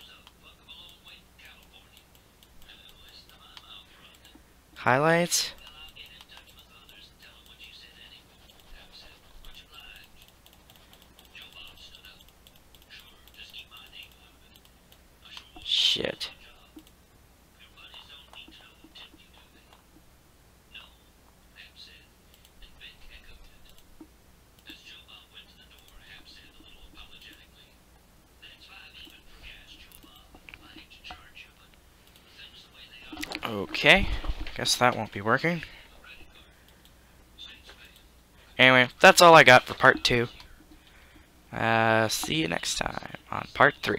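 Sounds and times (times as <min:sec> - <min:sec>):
faint clicks: 0:00.1 - 0:04.4, 0:09.4 - 0:15.7, 0:16.7 - 0:17.0, 0:22.3 - 0:22.6, 0:23.6 - 0:24.8, 0:29.8 - 0:32.3, 0:36.2 - 0:37.0
keyboard and mouse clicking: 0:09.4 - 0:15.5.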